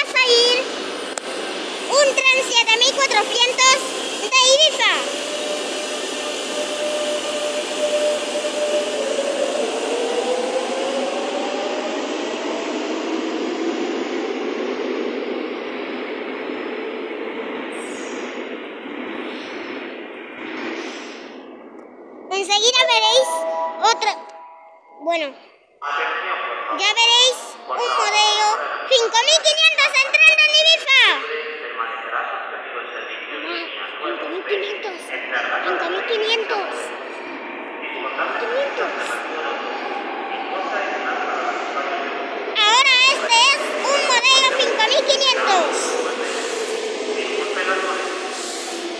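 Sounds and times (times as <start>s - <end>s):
person talking: 0.0s - 0.7s, 1.9s - 5.1s, 22.3s - 24.3s, 25.0s - 32.4s, 33.3s - 36.9s, 42.6s - 46.1s
electric train motors whining: 0.1s - 15.7s.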